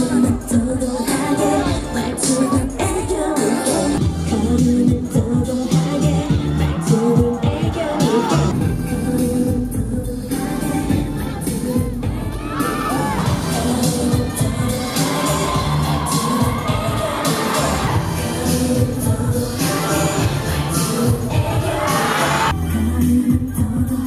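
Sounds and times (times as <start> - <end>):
live pop music: 0.0 - 24.0
woman singing into microphone: 0.0 - 24.0
crowd cheering: 12.3 - 18.3.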